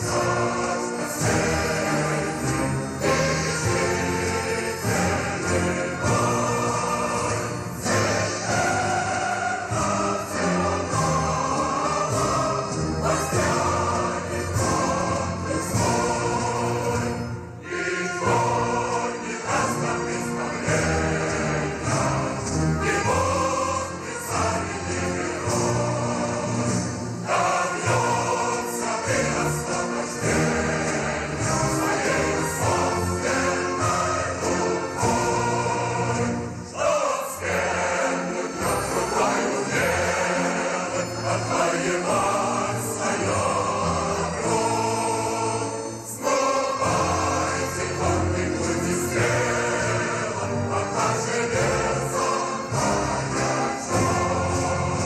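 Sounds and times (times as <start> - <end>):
choir singing sustained chords: 0.0 - 55.0.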